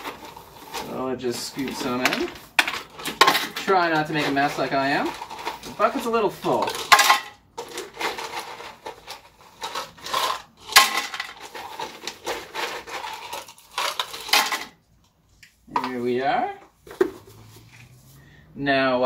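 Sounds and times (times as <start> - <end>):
ice cubes rattling into blender: 0.0 - 14.8.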